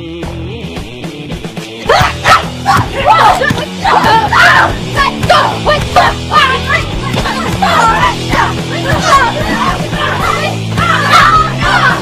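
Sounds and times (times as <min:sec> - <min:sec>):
background music: 0:00.0 - 0:12.0
women shouting and shrieking: 0:01.9 - 0:12.0.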